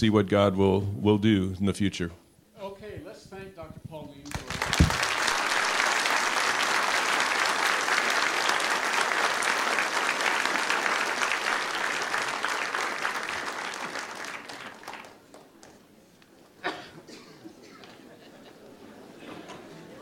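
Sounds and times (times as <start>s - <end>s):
audience applauding: 4.2s - 15.8s.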